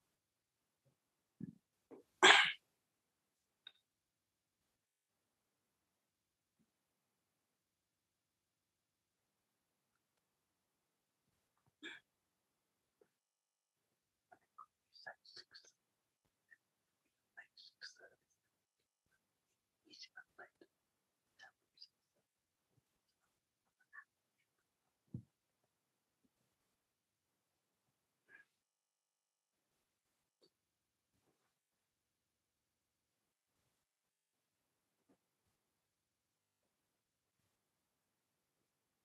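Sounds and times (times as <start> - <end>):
person sneezing: 2.2 - 2.6
person speaking softly: 14.4 - 15.8.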